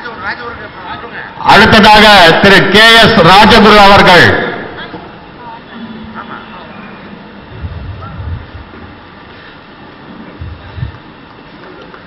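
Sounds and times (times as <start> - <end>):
large hall background noise: 0.0 - 12.0
faint indistinct voices: 4.6 - 8.2
low bumps: 7.5 - 9.1.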